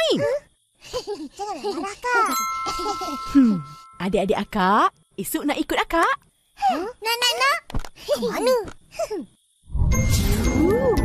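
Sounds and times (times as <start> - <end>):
tinkling chimes: 1.7 - 4.3, 9.8 - 11.0.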